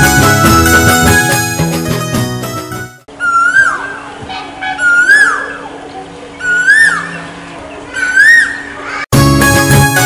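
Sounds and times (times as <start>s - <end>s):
bird calling: 3.1s - 9.1s.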